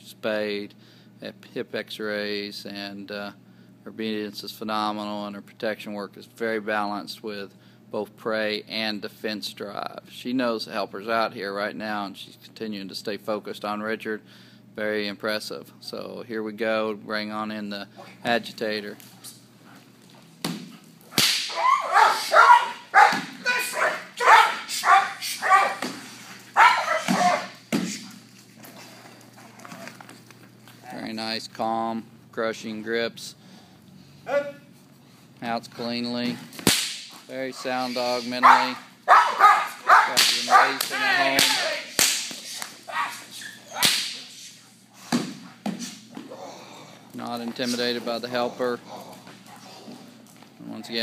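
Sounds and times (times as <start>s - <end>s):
sharp crack: 21.1s - 21.6s, 36.6s - 37.2s, 40.1s - 42.7s, 43.8s - 44.3s
dog barking aggressively: 21.5s - 25.8s, 26.6s - 27.6s, 38.4s - 40.8s.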